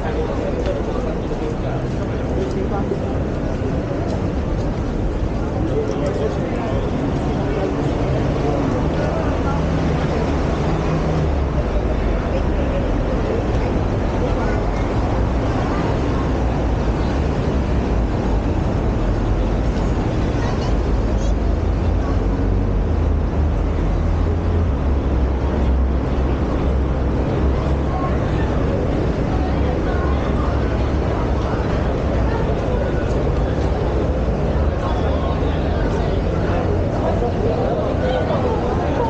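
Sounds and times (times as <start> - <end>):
pedestrians chattering: 0.0 - 39.0
road traffic rumble: 0.0 - 39.0.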